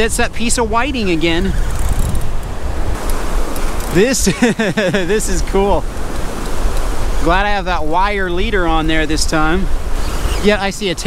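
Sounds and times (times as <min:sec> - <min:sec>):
ocean surf washing up beach: 0:00.0 - 0:11.0
wind rumbling on microphone: 0:00.0 - 0:11.0.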